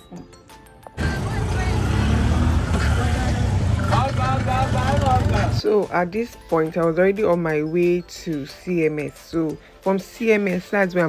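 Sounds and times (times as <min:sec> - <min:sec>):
background music: 0:00.0 - 0:11.0
engine and road rumble: 0:00.8 - 0:05.6.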